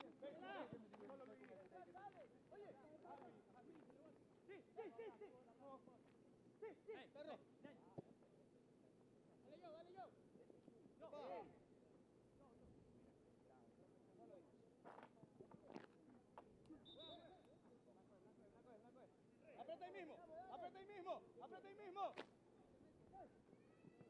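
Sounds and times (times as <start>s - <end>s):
quiet outdoor ambience: 0.0s - 24.0s.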